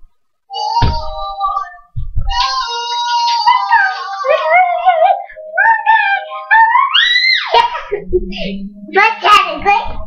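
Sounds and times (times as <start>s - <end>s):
toddler singing: 0.5s - 7.2s
toddler squealing: 6.9s - 7.6s.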